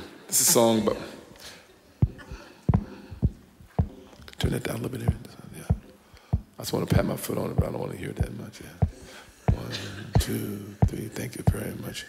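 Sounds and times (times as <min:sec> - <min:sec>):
foot thumping on stomp box: 0:02.0 - 0:11.7.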